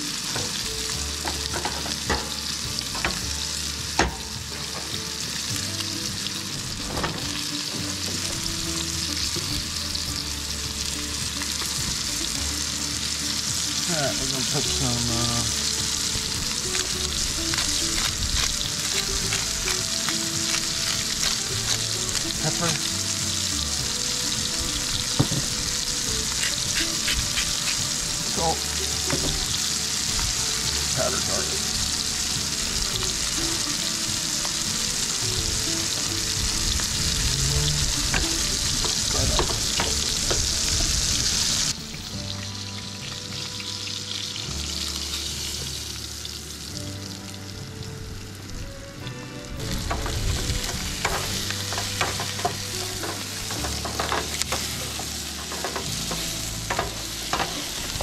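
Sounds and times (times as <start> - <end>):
food sizzling in pans: 0.0 - 58.0.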